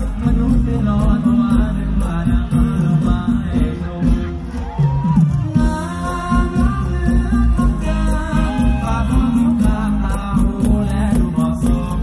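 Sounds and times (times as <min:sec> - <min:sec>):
live band music through pa: 0:00.0 - 0:12.0
person singing: 0:00.0 - 0:12.0.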